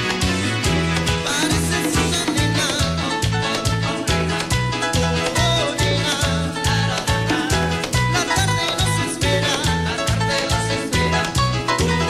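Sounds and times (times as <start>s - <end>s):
bass line: 0.0s - 12.0s
congas and percussion: 0.0s - 12.0s.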